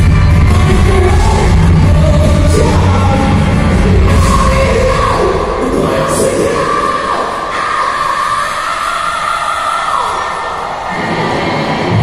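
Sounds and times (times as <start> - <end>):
live rock band in arena: 0.0 - 12.0.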